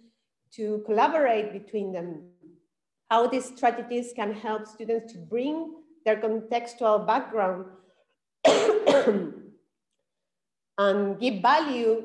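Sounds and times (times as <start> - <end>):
woman coughing: 8.4 - 9.5.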